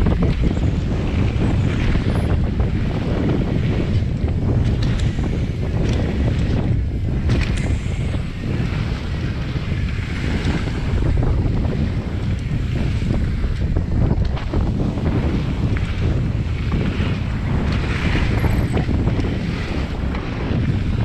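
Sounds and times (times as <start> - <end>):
wind rushing over microphone: 0.0 - 21.0
bike clicks and rattles: 3.2 - 8.2, 16.8 - 20.8.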